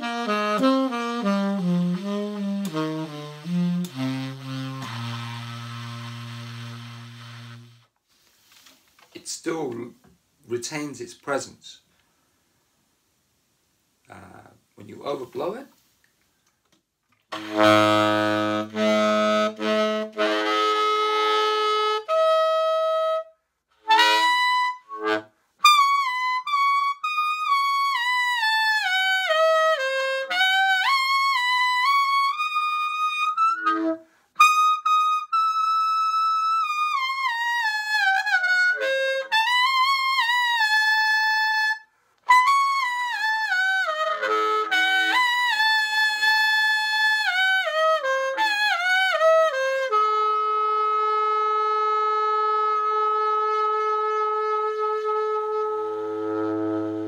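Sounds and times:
tenor saxophone solo: 0.0 - 7.9, 17.3 - 57.0.

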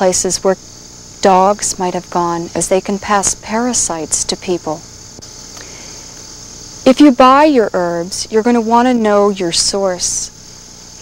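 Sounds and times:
woman speaking: 0.0 - 0.6, 1.2 - 4.8, 6.9 - 10.4
high-pitched insect chorus: 0.0 - 11.0.

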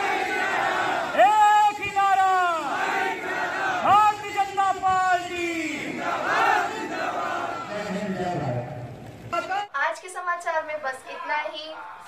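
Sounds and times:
man shouting through loudspeakers: 1.2 - 2.8, 3.8 - 6.0.

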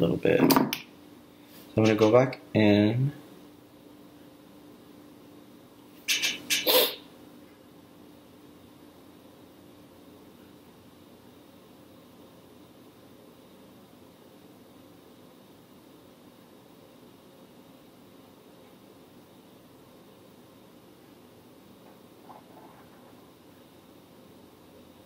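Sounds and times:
faint room hiss: 0.0 - 25.0.

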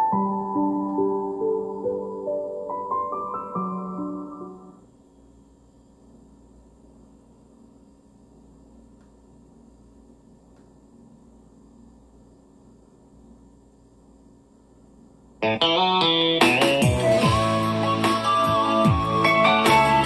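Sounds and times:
soft piano music: 0.0 - 4.8
faint low hum and hiss: 0.0 - 17.3.

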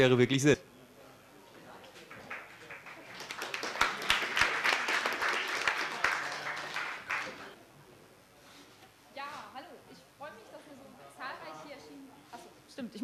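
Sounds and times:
audience applauding: 2.1 - 7.6.

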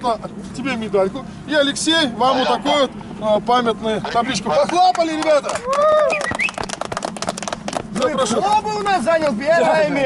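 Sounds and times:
people clapping: 4.5 - 9.4.

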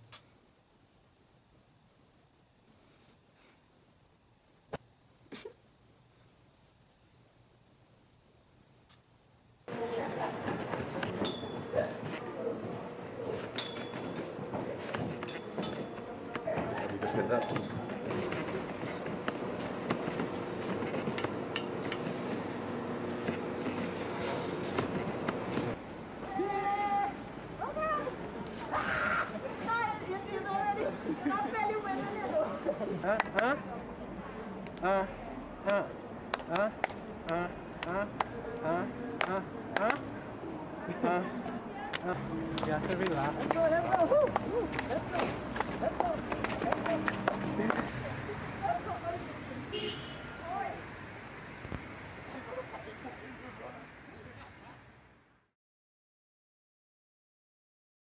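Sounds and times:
people calling out: 43.6 - 50.9.

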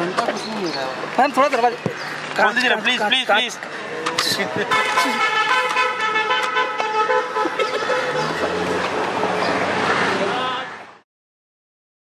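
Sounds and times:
street noise: 0.0 - 11.0
car horn blasts: 4.6 - 9.4.

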